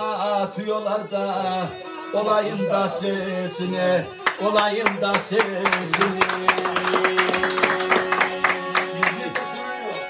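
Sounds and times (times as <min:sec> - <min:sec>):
fiddle playing a quick tune: 0:00.0 - 0:10.0
hand clapping: 0:04.2 - 0:09.6.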